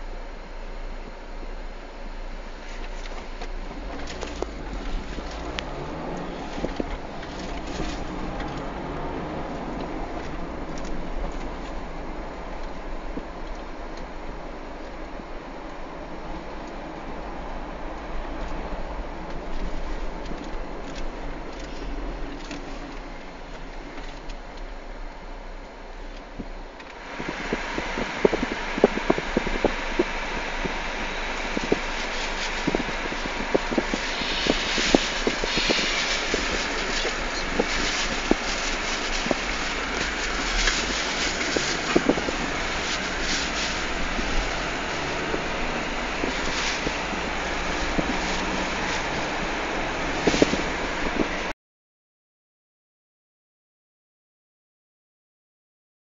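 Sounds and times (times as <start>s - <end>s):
car road noise: 0.0s - 51.5s.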